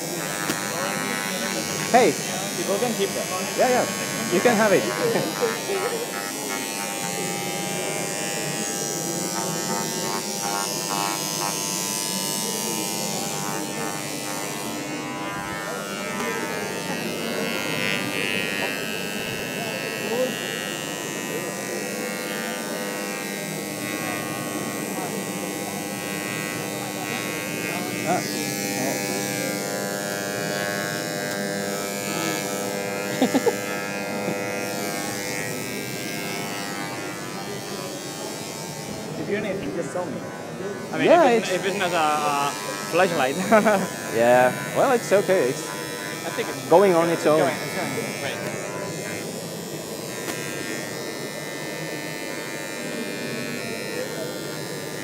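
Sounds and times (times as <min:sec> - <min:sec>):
engraving tool buzzing: 0:00.0 - 0:55.0.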